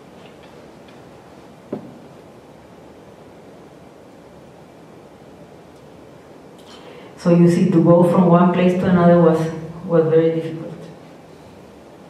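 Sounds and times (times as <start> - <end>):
room hiss: 0.0 - 12.0
short knock: 1.7 - 2.0.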